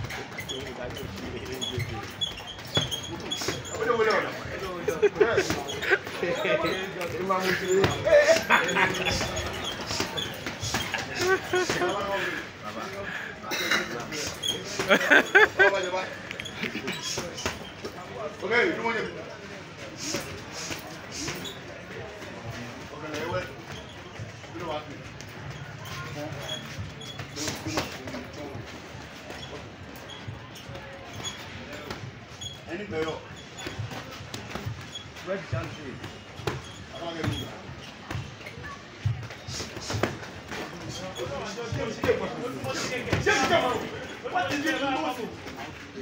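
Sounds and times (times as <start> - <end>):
voices: 0.0 - 46.0
onlookers talking: 1.3 - 36.4
people laughing: 4.0 - 17.4.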